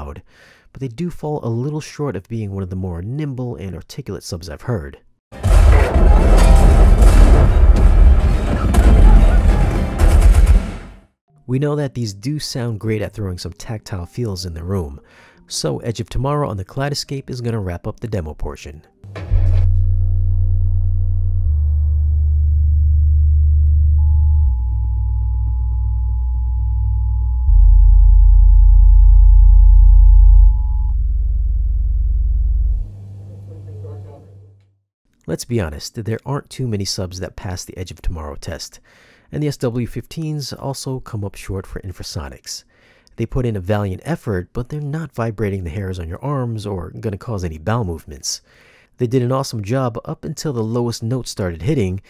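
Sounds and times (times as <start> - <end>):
deep bass explosions: 5.4 - 10.9, 19.1 - 25.9, 26.5 - 33.0
sharp blast: 5.4 - 11.0.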